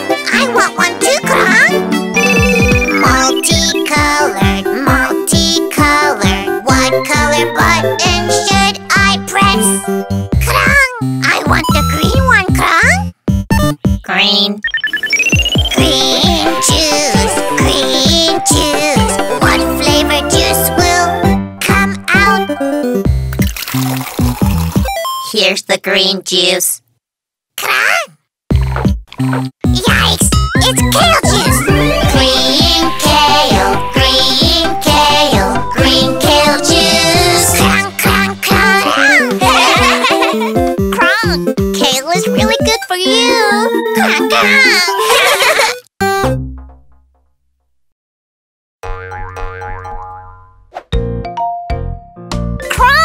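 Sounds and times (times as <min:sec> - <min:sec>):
children's music with bouncy notes: 0:00.0 - 0:23.2, 0:28.6 - 0:47.2, 0:48.8 - 0:53.0
cartoon juice pouring into glass: 0:23.3 - 0:25.0.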